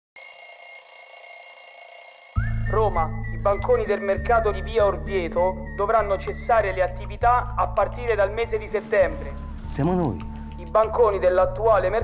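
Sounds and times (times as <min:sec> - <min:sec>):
alarm clock ringing: 0:00.2 - 0:03.1.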